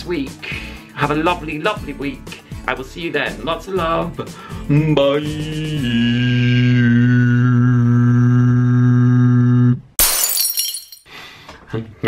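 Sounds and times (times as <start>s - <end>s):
loud shattering crash: 10.0s - 11.0s.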